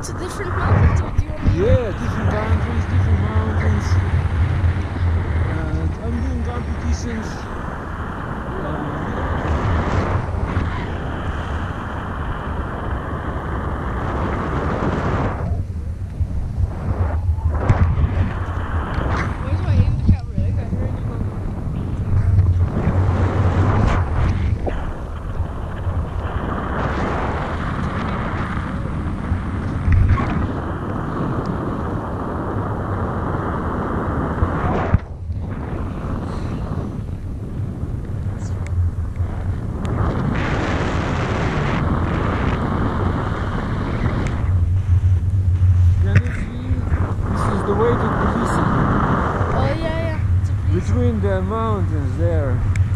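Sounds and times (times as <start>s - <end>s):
wind buffeting microphone: 0.0s - 52.9s.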